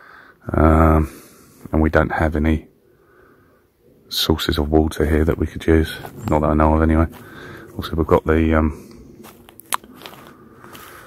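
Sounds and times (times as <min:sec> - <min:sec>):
faint crackling and crunching: 0:04.4 - 0:11.0.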